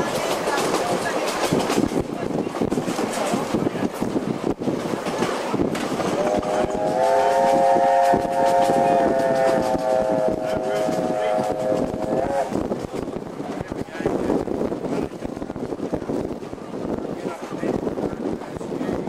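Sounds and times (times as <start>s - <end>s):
train wheels clattering over rails: 0.0s - 19.0s
steam locomotive whistle: 6.2s - 12.6s.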